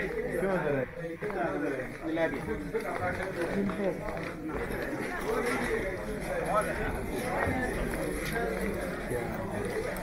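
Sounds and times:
passers-by talking: 0:00.0 - 0:10.0
footsteps on stone floor: 0:01.2 - 0:10.0.

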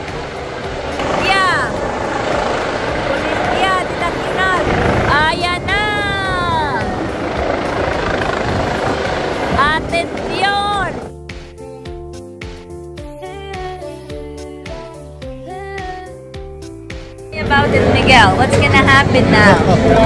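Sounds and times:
helicopter rotor rumble: 0:00.0 - 0:11.6, 0:17.2 - 0:20.0
drawn-out shouts: 0:01.0 - 0:07.3
crowd murmur: 0:17.4 - 0:20.0.

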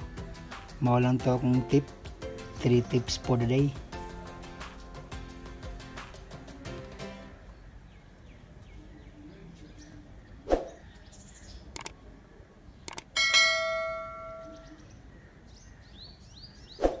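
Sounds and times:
sharp clicks: 0:11.7 - 0:12.0, 0:12.8 - 0:13.2
bell-like ding: 0:13.2 - 0:14.6.

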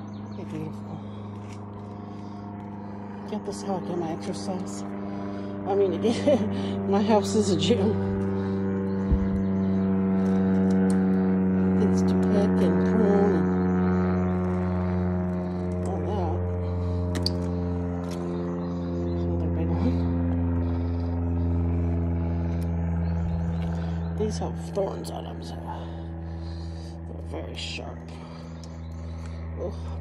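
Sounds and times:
mechanical drone: 0:00.0 - 0:30.0.

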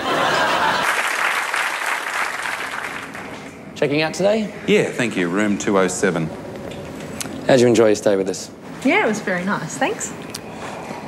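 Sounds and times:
audience applause: 0:00.0 - 0:03.5.

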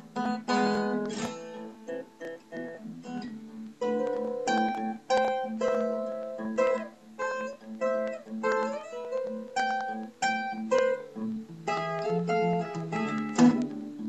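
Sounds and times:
fingerpicked acoustic guitar: 0:00.0 - 0:14.0.

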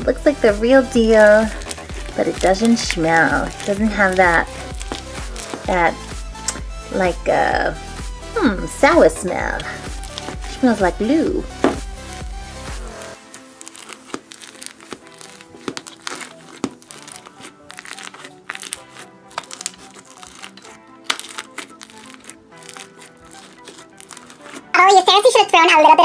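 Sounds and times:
quiet background music: 0:00.0 - 0:26.0
slime crackling and popping: 0:00.8 - 0:07.2, 0:08.6 - 0:11.9, 0:12.5 - 0:25.0.

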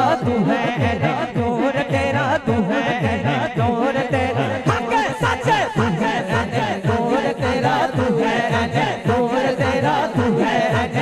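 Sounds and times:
man singing devotional poem: 0:00.0 - 0:11.0
men chanting repeated pattern: 0:00.0 - 0:11.0.

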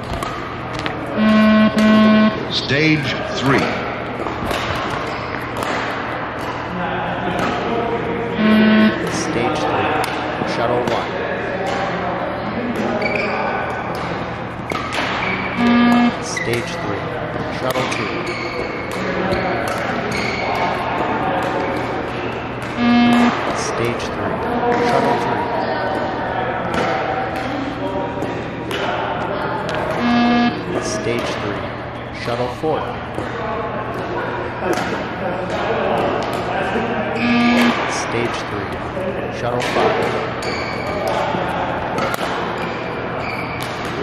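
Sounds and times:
short electronic beeps: 0:01.2 - 0:02.4, 0:08.4 - 0:09.4, 0:15.6 - 0:16.8, 0:22.8 - 0:24.1, 0:30.0 - 0:31.2, 0:37.2 - 0:37.8
shoe squeaks on court floor: 0:13.0 - 0:13.5, 0:43.2 - 0:43.8.

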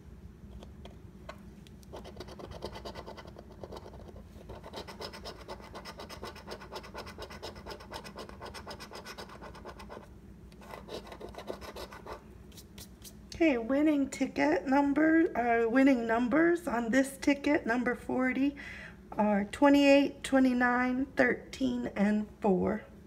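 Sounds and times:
coin scratching lottery ticket: 0:01.9 - 0:12.2.

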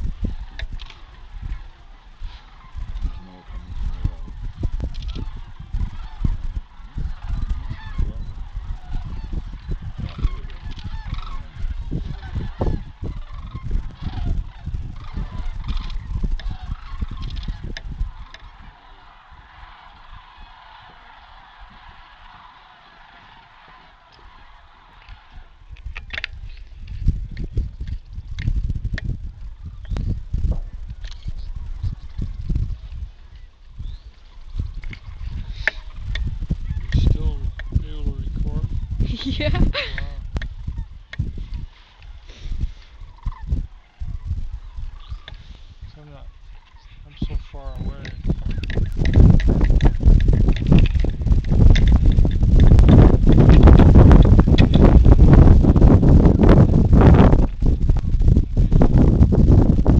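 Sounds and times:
cranes calling: 0:00.0 - 0:37.8, 0:38.6 - 0:58.9
wind buffeting microphone: 0:00.0 - 0:59.9.

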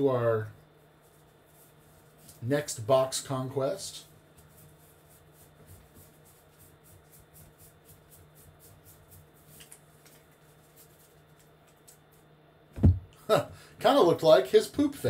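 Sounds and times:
low steady hum: 0:00.0 - 0:15.0
cards flipped by hand: 0:09.5 - 0:12.2.

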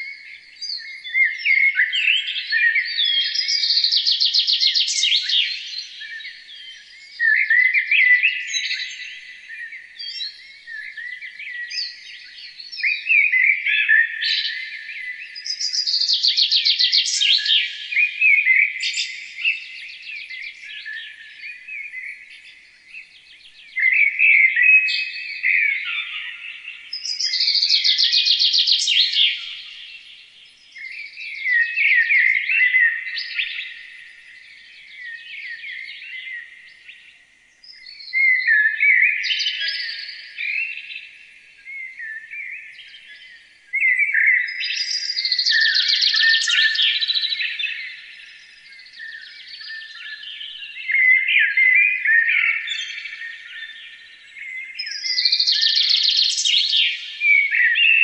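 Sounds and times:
songbird trilling and chirping: 0:00.0 - 0:58.0.

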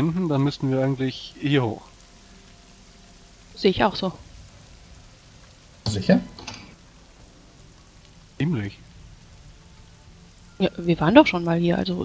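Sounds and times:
soft rain: 0:00.0 - 0:12.0
person speaking: 0:05.9 - 0:06.7.

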